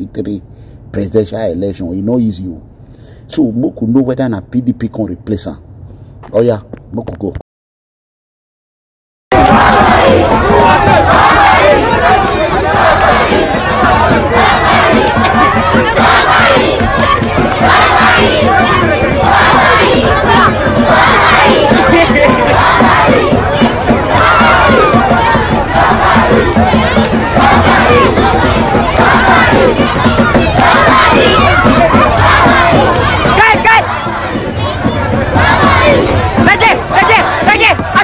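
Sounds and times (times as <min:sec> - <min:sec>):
crowd shouting: 0:09.3 - 0:38.0.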